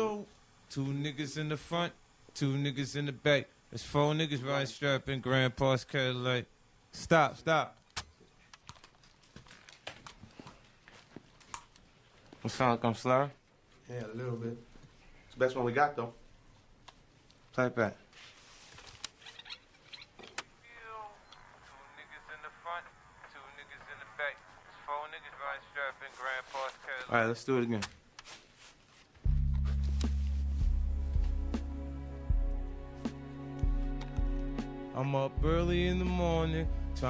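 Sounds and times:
recorded voice playing back: 20.6 - 27.9, 34.9 - 37.0.

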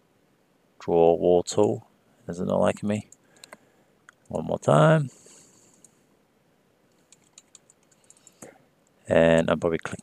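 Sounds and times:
faint computer clicks: 3.1 - 4.4, 6.9 - 10.0.

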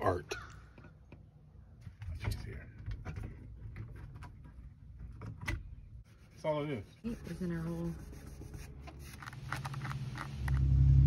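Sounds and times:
low rumble: 9.6 - 11.0.

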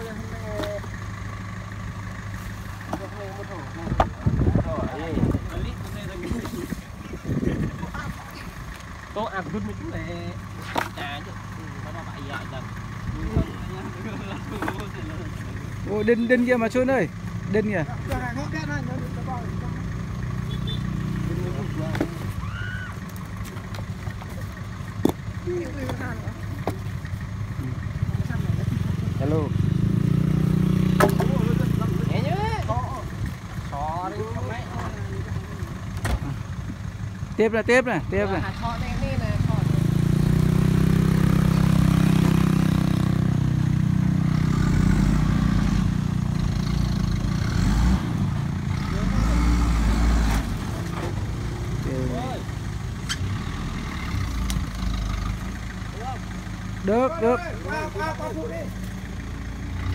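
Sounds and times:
truck engine idling: 0.0 - 59.9.

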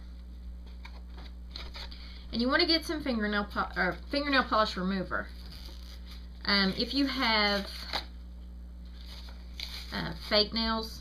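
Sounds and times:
low electrical hum: 0.0 - 11.0
packet crinkling and rustling: 9.0 - 10.4.

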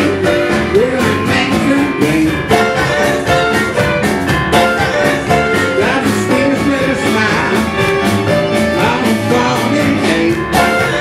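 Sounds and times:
live band with electric keyboard: 0.0 - 11.0.

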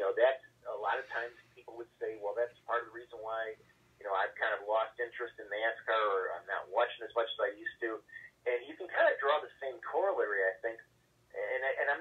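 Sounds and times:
man talking over telephone: 0.0 - 10.8, 11.4 - 12.0.

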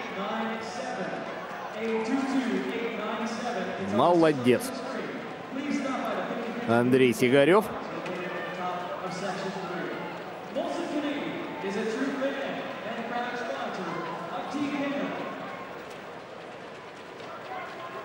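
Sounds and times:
faint man's voice: 0.0 - 15.4
crowd noise: 0.0 - 18.0.

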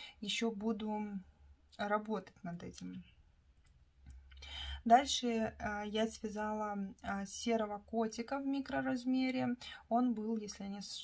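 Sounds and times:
woman speaking: 0.0 - 3.2, 4.5 - 11.0
soft in-breath: 4.4 - 4.8.

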